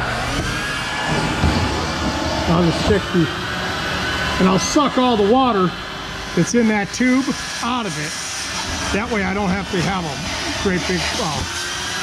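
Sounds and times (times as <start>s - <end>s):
shop vac running: 0.0s - 12.0s.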